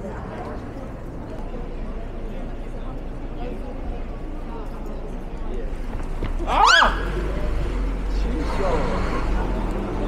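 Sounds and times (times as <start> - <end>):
murmur of street crowd: 0.0 - 10.0
high-pitched startled cry: 6.4 - 7.1.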